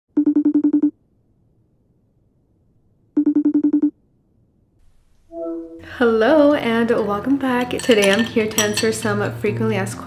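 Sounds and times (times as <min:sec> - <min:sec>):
electronic phone ringtone trilling: 0:00.2 - 0:00.9, 0:03.2 - 0:03.9.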